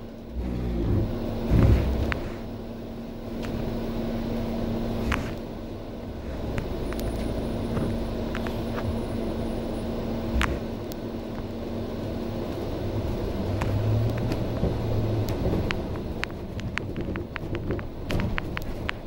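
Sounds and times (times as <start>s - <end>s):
bus body rattles and clicks: 0.0s - 19.0s
bus engine rumble: 0.0s - 19.0s
heavy thumps: 0.8s - 2.2s.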